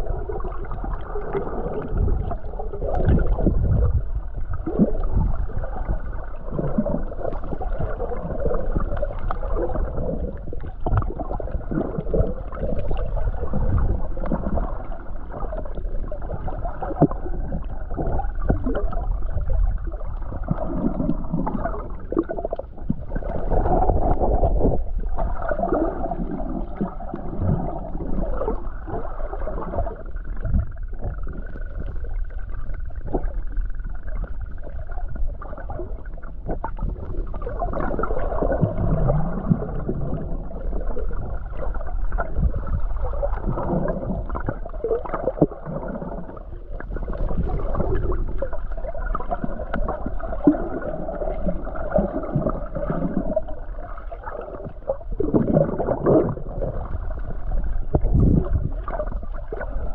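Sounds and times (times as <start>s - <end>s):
underwater gurgling and sloshing: 0.0s - 59.9s.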